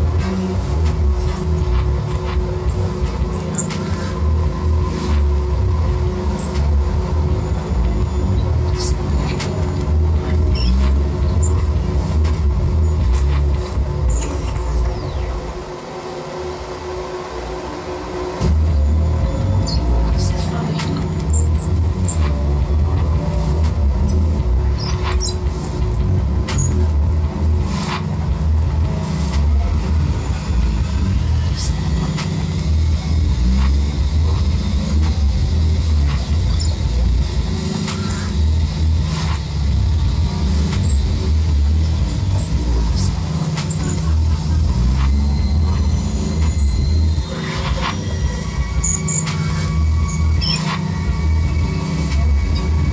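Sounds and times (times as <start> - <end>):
glitchy high chirps and squeals: 0.0 - 52.9
pulsing deep bass: 0.0 - 52.9.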